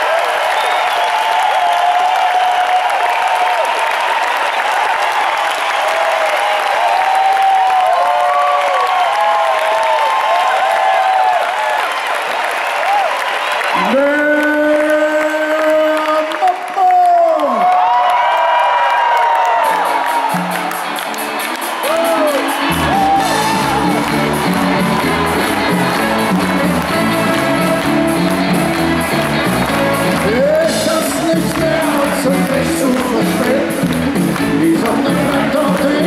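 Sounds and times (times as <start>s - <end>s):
crowd cheering: 0.0s - 36.0s
rock band playing: 19.6s - 36.0s
ticking percussion rhythm: 19.8s - 36.0s
bass: 21.7s - 36.0s.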